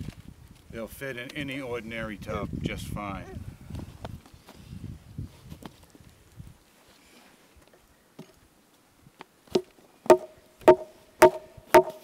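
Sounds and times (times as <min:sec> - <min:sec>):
sharp ringing wooden knocks: 0:09.6 - 0:12.0.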